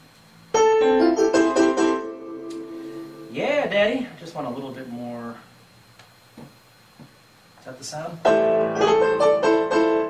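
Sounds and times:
digital piano chords: 0.5 - 4.0, 8.2 - 10.0.

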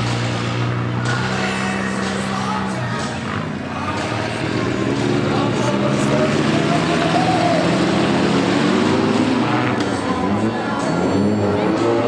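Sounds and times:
race car engines revving: 0.0 - 12.0.

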